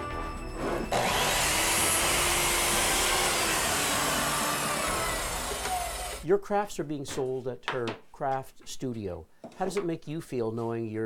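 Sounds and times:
miter saw cutting wood: 0.6 - 6.2.

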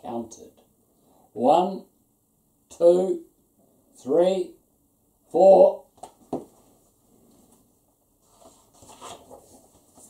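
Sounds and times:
book page tap: 6.0 - 6.5
paper rustling and scuffing: 8.2 - 10.0.

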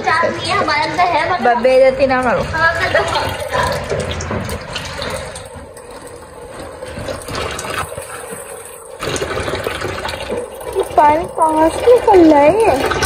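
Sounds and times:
water splashing into washing machine tub: 0.0 - 13.0.

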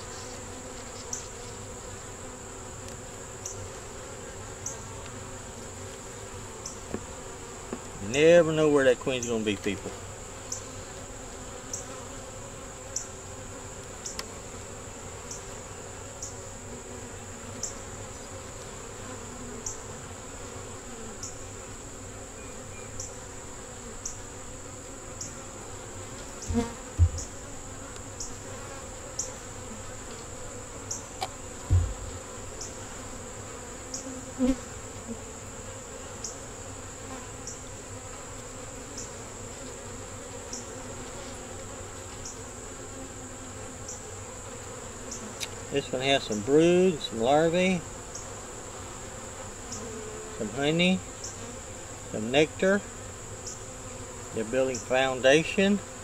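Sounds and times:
bees humming: 0.0 - 56.0
wooden frames knocking: 26.5 - 27.4, 31.7 - 32.2.

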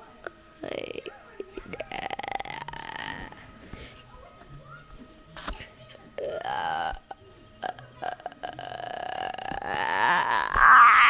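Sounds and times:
boy making burp-like vocal noise: 1.8 - 3.3, 6.2 - 11.0.

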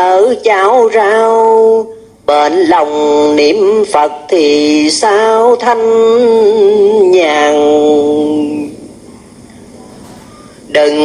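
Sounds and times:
faint background noise: 0.0 - 11.0
person chanting: 0.0 - 11.0.

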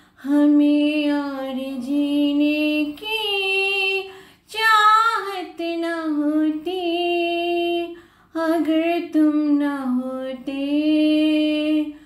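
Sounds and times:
woman singing unaccompanied: 0.2 - 12.0.

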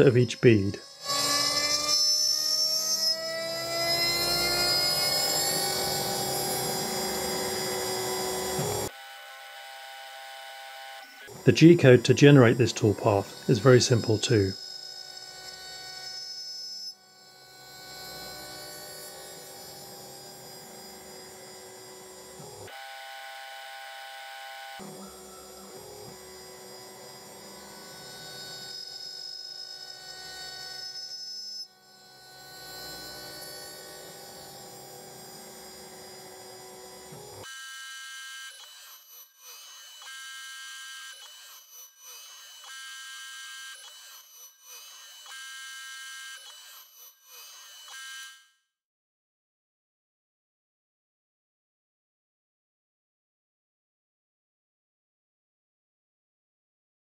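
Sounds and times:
milling machine motor whine: 0.0 - 38.9.

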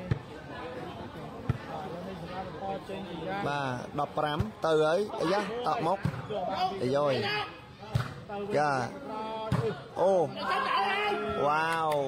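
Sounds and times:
crowd at ball game: 0.0 - 12.0.

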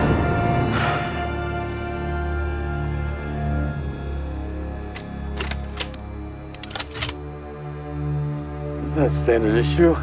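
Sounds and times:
rifle metal parts clicking: 4.8 - 7.2.

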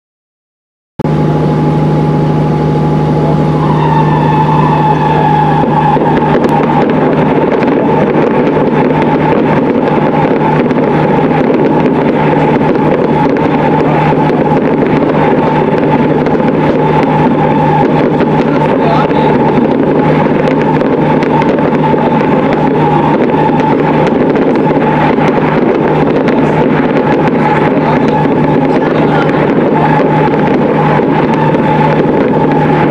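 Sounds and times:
gliding tones: 1.1 - 32.9
horn-like drone: 1.1 - 32.9
fireworks crackling: 3.1 - 32.9.

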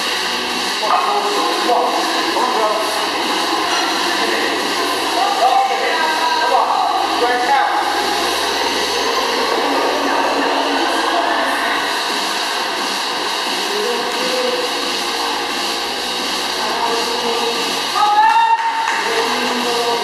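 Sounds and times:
air-resistance fan whooshing: 0.0 - 20.0
indistinct voices: 0.0 - 20.0.

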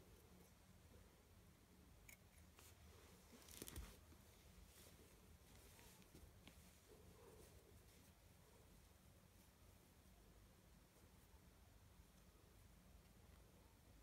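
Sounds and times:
rustling of yarn: 2.3 - 11.5.

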